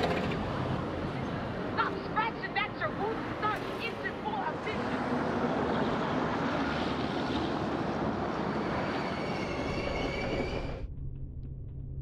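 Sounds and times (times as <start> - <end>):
heavy traffic rumble: 0.0 - 10.9.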